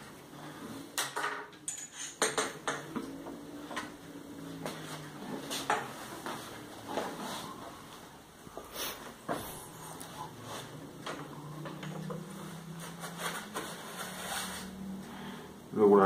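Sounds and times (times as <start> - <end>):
light metallic clinks and knocks: 1.2 - 3.0.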